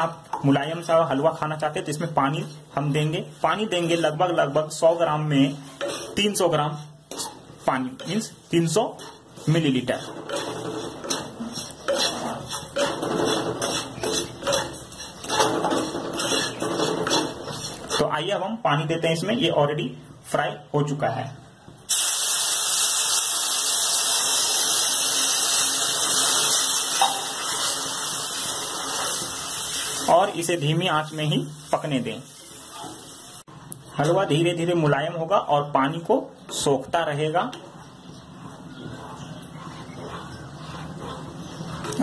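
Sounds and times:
mixture bubbling and sizzling in pan: 0.0s - 18.5s, 21.9s - 34.7s
wooden spatula scraping a pan: 1.1s - 18.2s, 37.5s - 42.0s.

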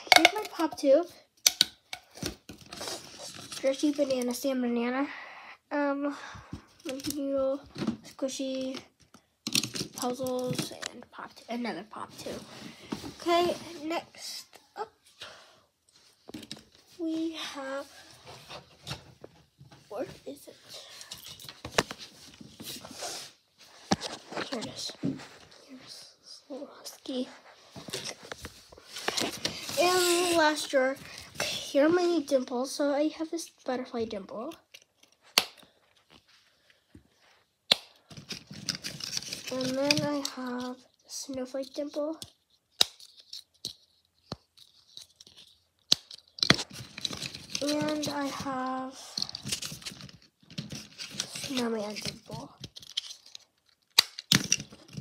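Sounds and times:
person speaking: 0.0s - 1.2s, 6.8s - 8.9s, 9.8s - 15.0s, 16.9s - 18.2s, 19.8s - 21.2s, 24.0s - 28.4s, 29.0s - 34.7s, 39.5s - 42.2s, 47.5s - 49.5s, 51.1s - 52.7s
toys rustling: 0.0s - 4.7s, 6.5s - 15.2s, 15.8s - 55.0s.

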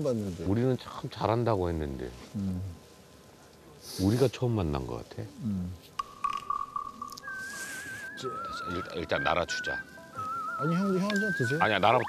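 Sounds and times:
whistled melody: 6.1s - 12.0s.

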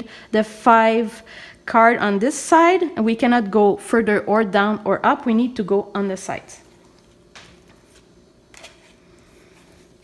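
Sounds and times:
playing card rustle: 7.4s - 9.9s.

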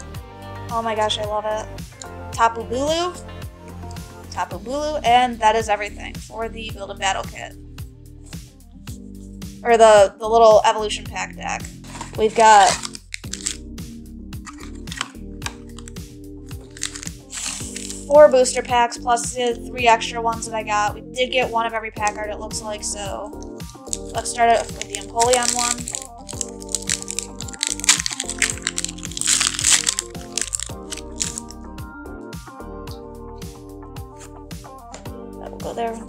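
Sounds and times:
background music with sliding bass: 0.0s - 36.0s
foil packs crinkling: 11.8s - 13.6s, 14.5s - 16.0s, 16.6s - 18.1s, 23.7s - 31.5s.

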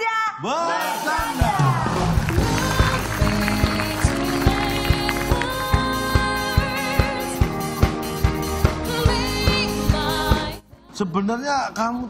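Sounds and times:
drum beat: 1.0s - 10.6s
held chords: 2.2s - 10.7s.

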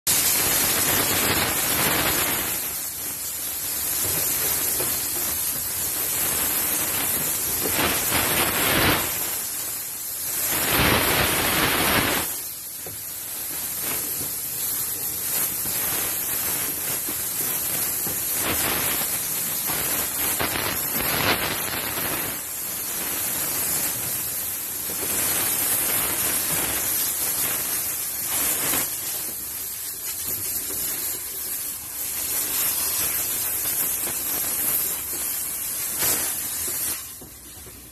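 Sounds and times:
steam cleaner hissing: 0.1s - 37.9s.

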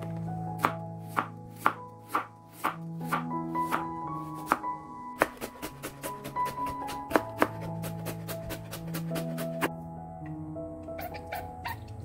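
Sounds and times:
background music: 0.0s - 12.0s
knife chopping carrot on board: 0.6s - 9.7s.

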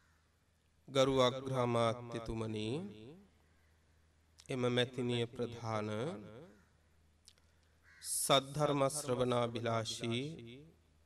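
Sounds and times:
man speaking: 0.9s - 3.0s, 4.4s - 6.3s, 8.1s - 10.5s.

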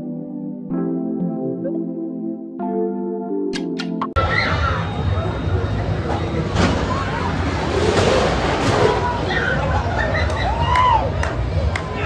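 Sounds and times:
crowd chatter: 4.2s - 12.0s.

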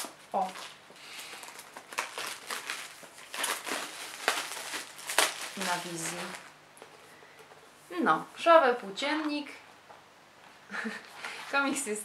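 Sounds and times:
plastic wrapping crinkling and tearing: 0.0s - 7.0s.

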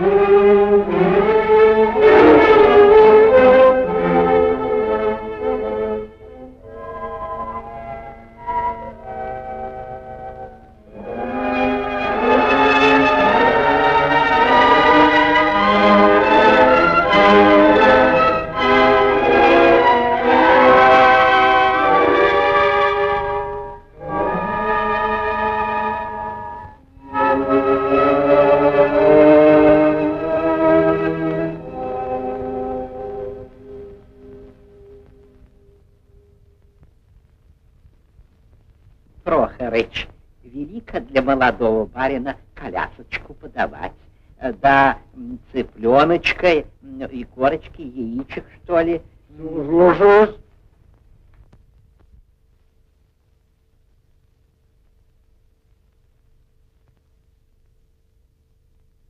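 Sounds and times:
orchestral music: 0.0s - 34.9s.

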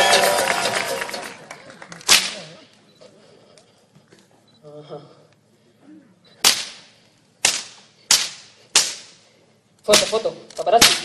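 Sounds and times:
music: 0.0s - 1.5s
whip crack: 2.0s - 2.6s, 6.4s - 9.2s, 9.9s - 11.0s.

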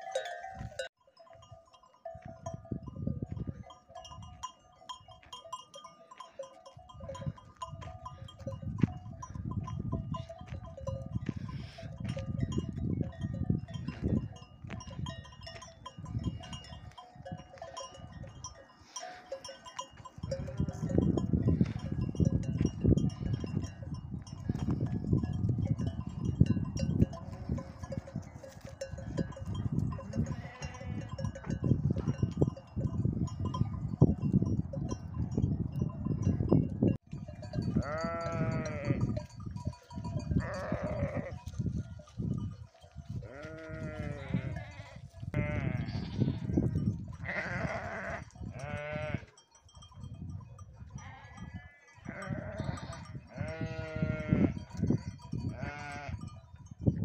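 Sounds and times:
sheep bleating: 37.8s - 39.1s, 40.4s - 41.4s, 43.2s - 46.6s, 47.2s - 49.3s, 51.0s - 54.6s, 55.5s - 56.2s.

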